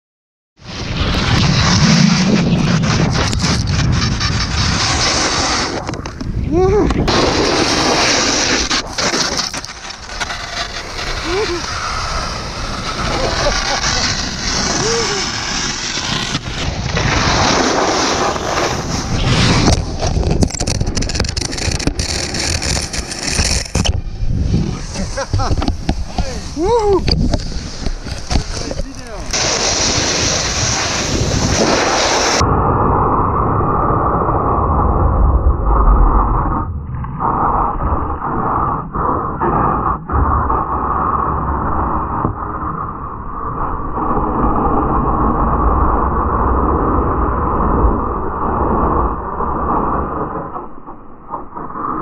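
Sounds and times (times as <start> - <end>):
snowboard scraping icy snow: 0.6 - 32.8, 35.7 - 52.0
wind on microphone: 0.7 - 50.4.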